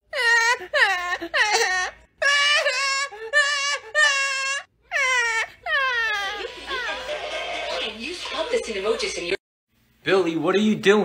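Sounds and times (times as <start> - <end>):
man imitating child crying: 0.1 - 6.4
television voices and music: 6.2 - 9.4.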